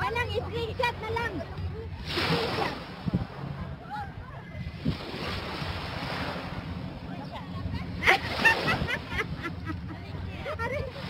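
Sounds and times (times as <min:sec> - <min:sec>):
water lapping at shore: 0:00.0 - 0:11.0
wind noise on microphone: 0:00.0 - 0:11.0.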